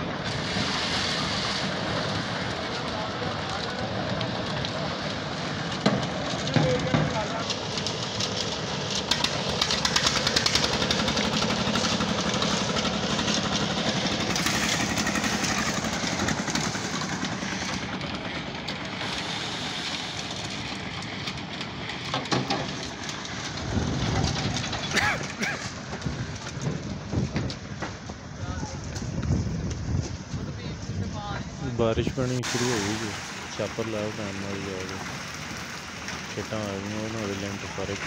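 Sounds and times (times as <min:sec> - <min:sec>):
concrete mixer running: 0:00.0 - 0:38.0
machinery knocks and rattles: 0:20.8 - 0:28.2
people's voices: 0:30.3 - 0:35.3, 0:36.3 - 0:38.0.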